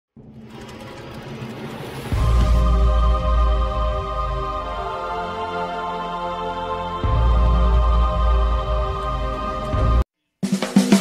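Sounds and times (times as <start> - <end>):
dense rattling noise swell: 0.1 - 4.8.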